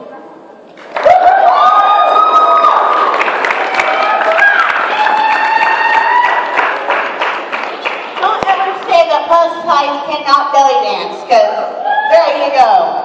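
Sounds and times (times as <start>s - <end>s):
audience clapping: 0.8s - 1.7s, 2.5s - 8.9s
audience cheering: 0.9s - 7.8s.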